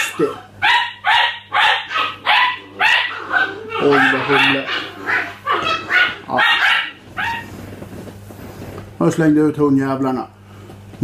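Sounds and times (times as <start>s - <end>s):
dogs barking indoors: 0.0s - 7.9s.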